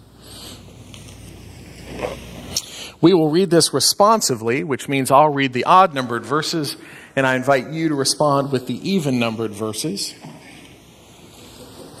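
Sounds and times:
pages being turned: 0.9 - 2.6.

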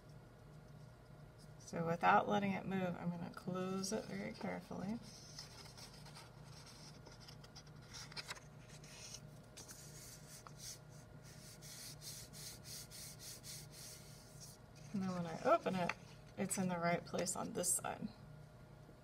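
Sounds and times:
hands rubbing on paper: 7.8 - 16.0.

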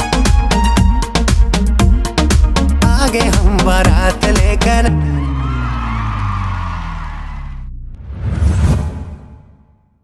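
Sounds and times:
whoosh effect: 7.9 - 9.8.

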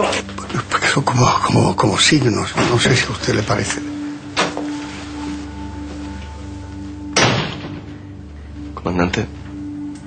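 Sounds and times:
sustained tone background music: 0.0 - 10.0
loud sudden thump: 7.2 - 7.9.

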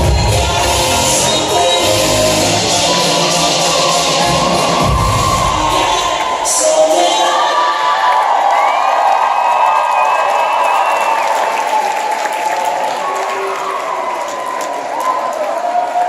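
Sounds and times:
audience applauding and cheering: 0.0 - 16.0
long high-pitched cheer: 2.6 - 16.0.

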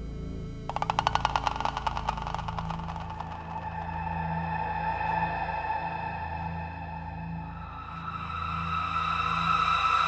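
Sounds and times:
low sustained synth pad: 0.0 - 0.7, 3.5 - 10.0.

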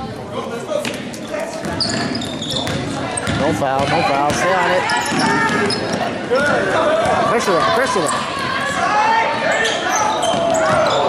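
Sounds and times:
voices calling out: 1.3 - 11.0
basketball dribbled on wooden floor: 2.6 - 4.5.

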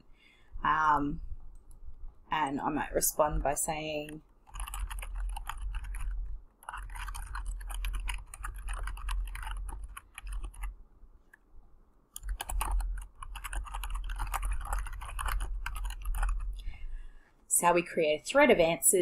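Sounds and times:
fast typing on keyboard: 4.0 - 10.8, 12.2 - 16.7.

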